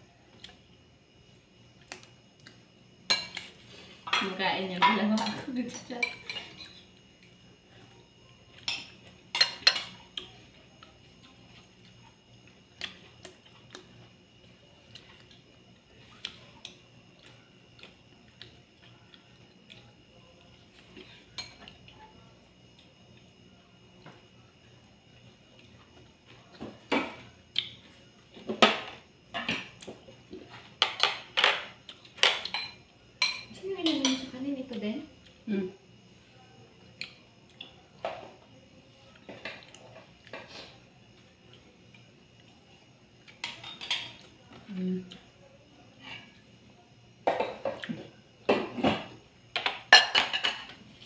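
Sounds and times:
spoons clinking on ceramic plates: 4.1 - 6.8, 8.6 - 10.0, 32.2 - 34.3, 49.6 - 50.7.

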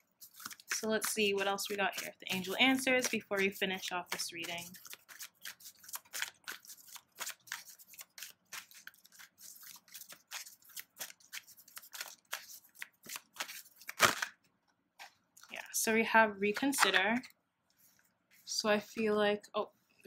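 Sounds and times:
cards being shuffled: 0.1 - 14.4, 16.5 - 17.3.

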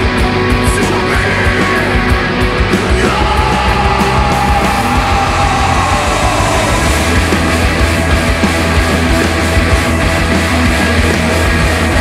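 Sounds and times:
heavy metal band music: 0.0 - 12.0.

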